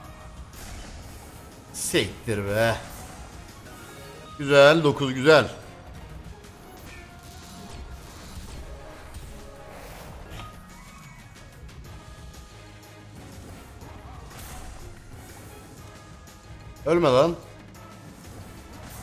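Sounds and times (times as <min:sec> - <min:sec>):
slot game background music: 0:00.0 - 0:19.0.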